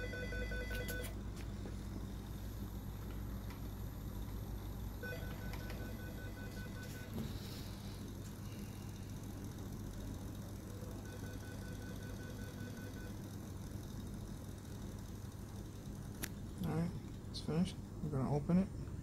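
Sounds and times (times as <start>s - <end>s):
steady low hum: 0.0s - 19.0s
rapid high-pitched electronic beeping: 10.1s - 13.6s.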